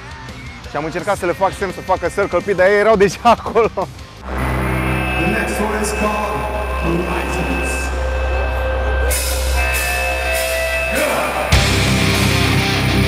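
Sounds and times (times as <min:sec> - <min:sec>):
metal band sustained chords: 0:04.2 - 0:13.0.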